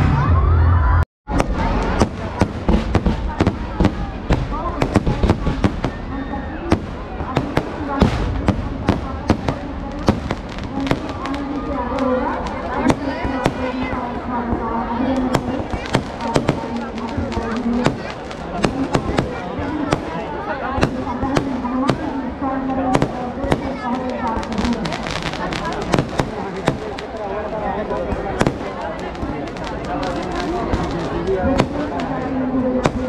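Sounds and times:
crowd voices: 0.0s - 33.0s
fireworks bangs and crackles: 1.3s - 33.0s.

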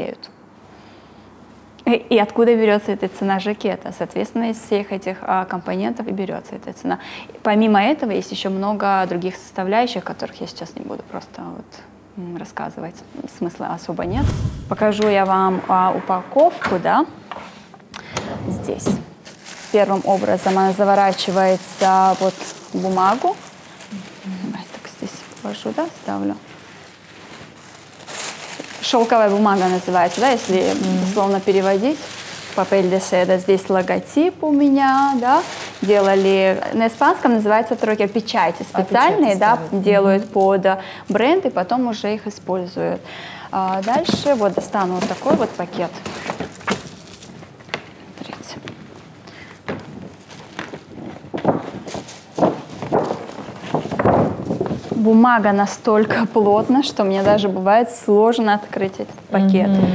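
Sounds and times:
tissue paper rustling: 19.2s - 40.7s, 43.7s - 47.5s, 49.8s - 55.1s.

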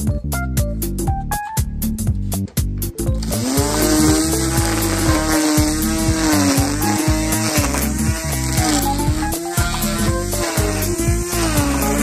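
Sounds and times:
background music with steady beat: 0.0s - 12.0s
electric string trimmer cutting grass: 3.2s - 12.0s.

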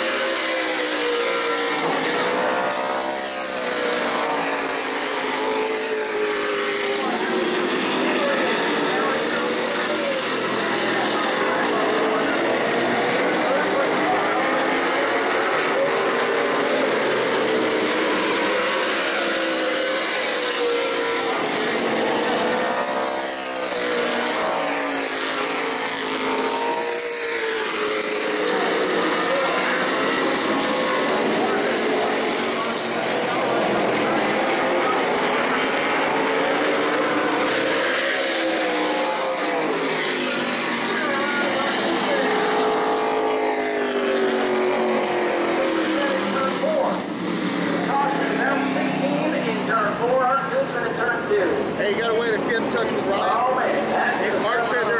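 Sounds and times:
race car engines accelerating: 0.0s - 54.9s.

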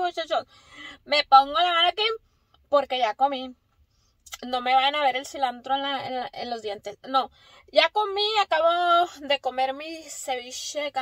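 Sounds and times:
woman talking: 0.0s - 3.6s, 4.3s - 11.0s.

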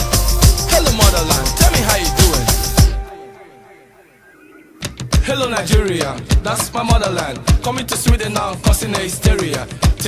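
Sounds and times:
dance music beat: 0.0s - 3.1s, 4.8s - 10.0s.

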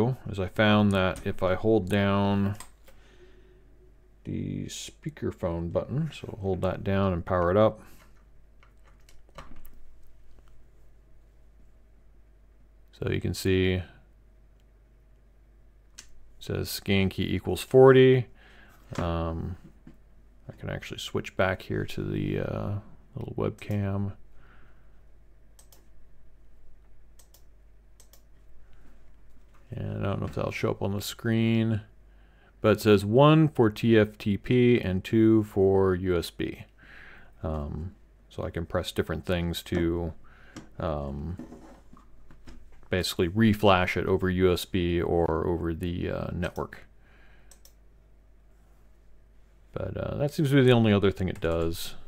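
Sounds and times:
faint low hum: 0.0s - 52.0s.

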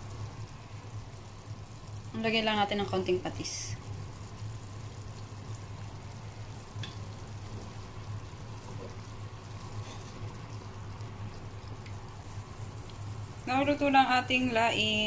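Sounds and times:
low steady hum: 0.0s - 15.0s
pot bubbling: 0.0s - 15.0s.

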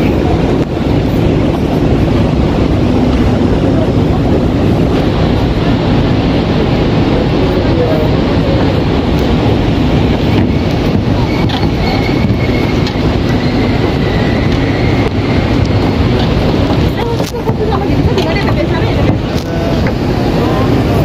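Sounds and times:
people talking in background: 0.0s - 12.3s, 15.8s - 21.0s
wind buffeting microphone: 0.0s - 21.0s.

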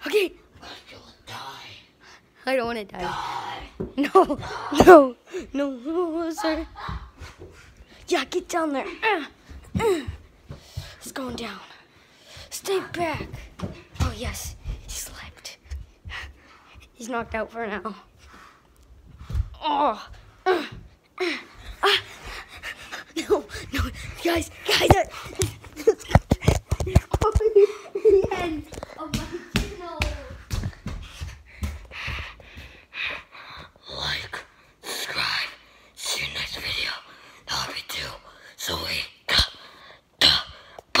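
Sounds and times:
breathing puffs: 7.1s - 8.1s, 10.0s - 11.1s, 11.7s - 12.6s, 15.7s - 17.0s, 18.1s - 19.5s, 20.2s - 24.4s, 30.6s - 33.8s.

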